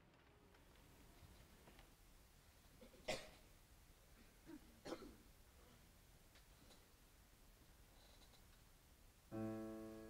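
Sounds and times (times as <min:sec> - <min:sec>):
short coughs: 0:02.8 - 0:03.5, 0:04.2 - 0:05.2.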